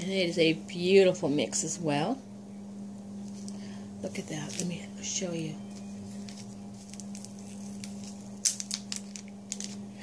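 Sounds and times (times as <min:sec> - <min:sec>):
steady low hum: 0:00.0 - 0:10.0
plastic bags crinkling and clicking: 0:05.7 - 0:10.0.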